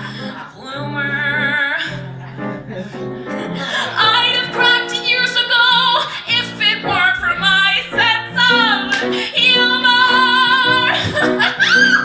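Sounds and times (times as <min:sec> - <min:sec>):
piano accompaniment: 0:00.0 - 0:12.0
woman singing show tune: 0:03.8 - 0:11.2.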